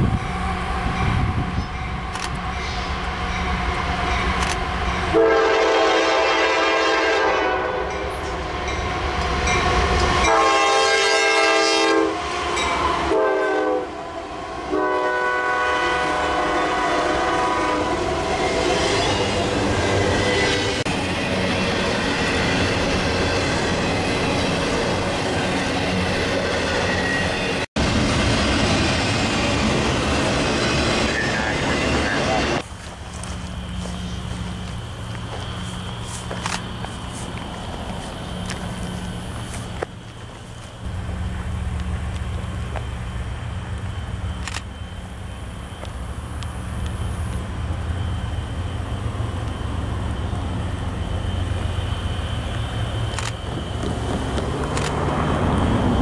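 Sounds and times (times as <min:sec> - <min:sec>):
diesel locomotive engines running: 0:00.0 - 0:56.0
train air horn: 0:05.1 - 0:08.2, 0:10.2 - 0:19.3.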